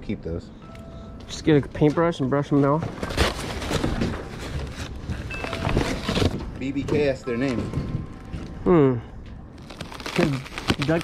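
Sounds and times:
wrapping paper crinkling: 0:03.0 - 0:06.4, 0:09.6 - 0:11.0.

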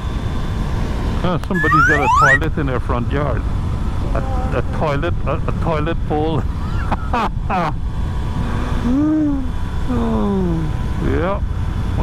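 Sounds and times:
wind and road noise: 0:00.0 - 0:12.0
person speaking: 0:01.5 - 0:02.6
person humming: 0:08.4 - 0:10.7.

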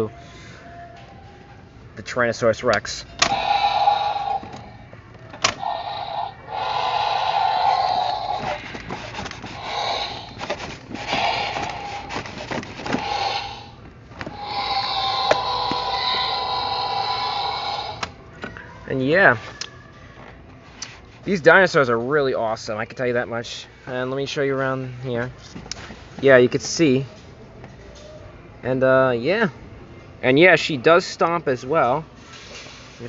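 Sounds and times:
toy electronic roars: 0:03.2 - 0:04.8, 0:05.4 - 0:18.2.

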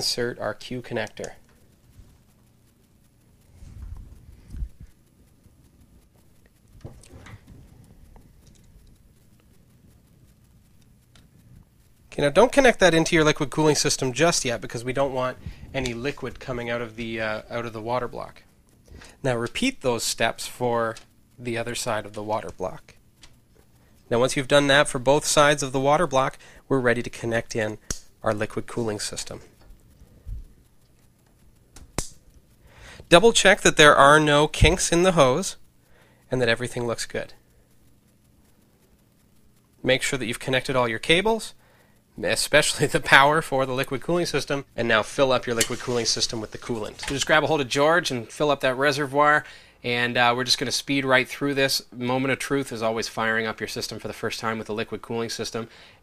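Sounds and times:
small clicks: 0:03.8 - 0:12.0, 0:22.4 - 0:24.1.

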